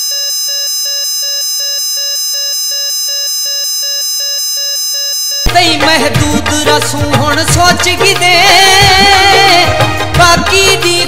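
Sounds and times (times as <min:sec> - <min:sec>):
electronic alarm beeping: 0:00.0 - 0:05.5
music: 0:05.5 - 0:11.0.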